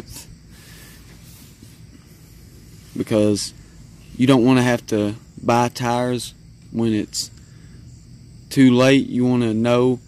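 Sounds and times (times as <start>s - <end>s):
background hiss: 0.0s - 10.0s
faint low hum: 0.0s - 10.0s.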